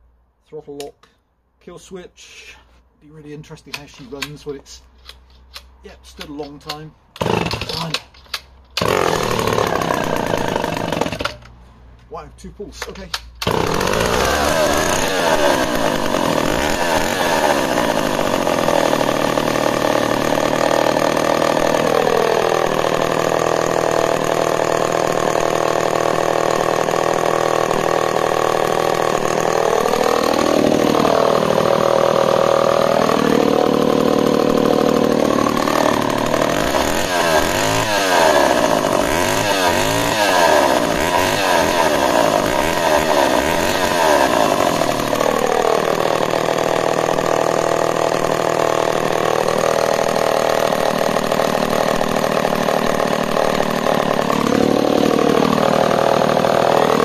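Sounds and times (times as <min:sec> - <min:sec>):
chainsaw idling and revving: 0:05.9 - 0:08.0, 0:08.7 - 0:11.6, 0:12.8 - 0:57.0.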